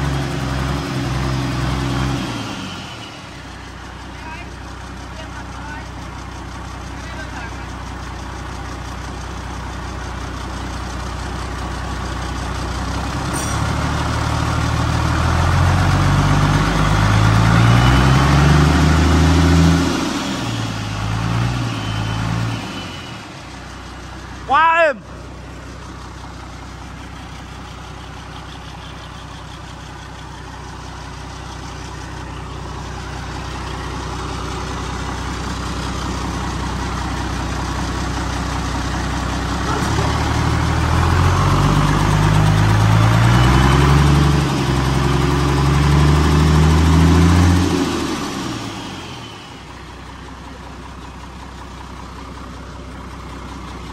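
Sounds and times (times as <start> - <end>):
diesel engine revving: 0.0 - 53.9
loud squeal: 21.0 - 23.6.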